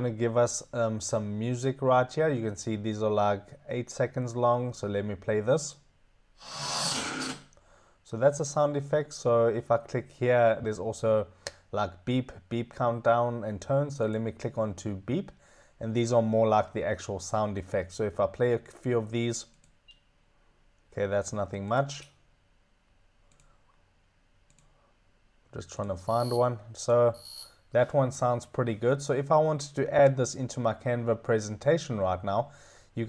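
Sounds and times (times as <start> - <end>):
rushing hiss-like noise: 6.4 - 7.4
computer mouse clicks: 23.3 - 23.5, 24.5 - 24.7.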